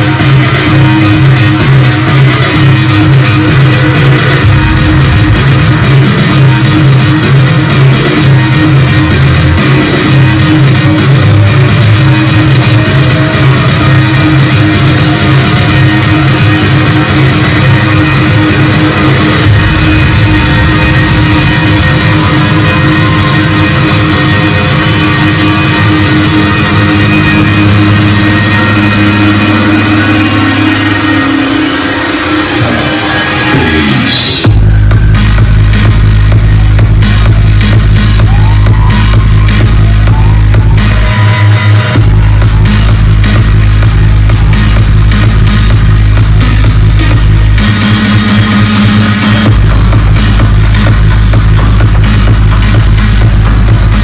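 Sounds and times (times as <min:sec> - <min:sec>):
loud electronic dance music: 0:00.0 - 0:54.0
rising synth sweep: 0:04.3 - 0:06.7, 0:18.6 - 0:24.5.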